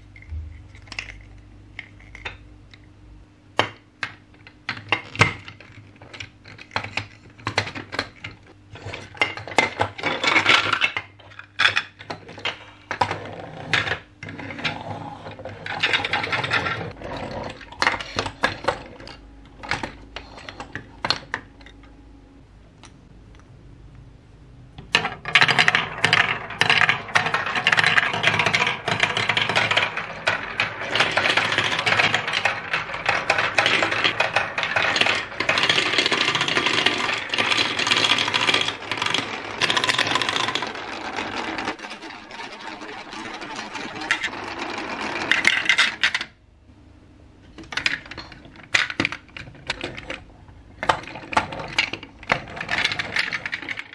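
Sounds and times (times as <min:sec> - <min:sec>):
marbles rattling down a marble run: 0:13.7 - 0:19.0, 0:25.0 - 0:46.3, 0:50.8 - 0:53.9.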